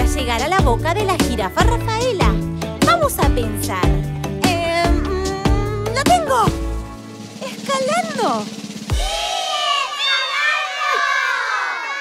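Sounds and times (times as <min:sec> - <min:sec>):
children shouting and cheering: 0:08.9 - 0:12.0.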